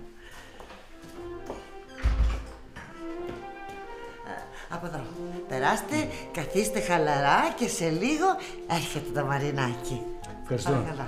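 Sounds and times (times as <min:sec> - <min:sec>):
background music of held notes: 0:00.0 - 0:11.0.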